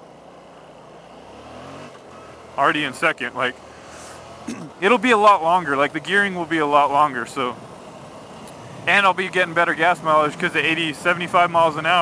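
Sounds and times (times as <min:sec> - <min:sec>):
motorcycle engine revving: 0:01.2 - 0:12.0.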